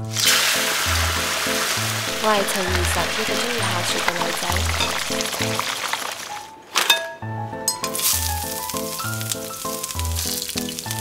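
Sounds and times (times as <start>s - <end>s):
shrimp sizzling in hot oil: 0.0s - 6.5s, 7.8s - 11.0s
person singing: 2.2s - 5.6s
background music with bass: 7.3s - 11.0s.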